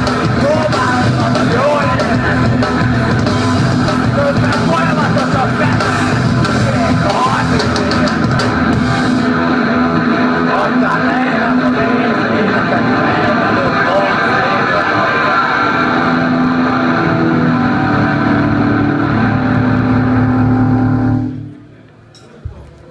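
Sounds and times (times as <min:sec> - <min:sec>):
distorted electric guitars and bass droning: 0:00.0 - 0:22.1
guitar feedback tones: 0:00.0 - 0:22.1.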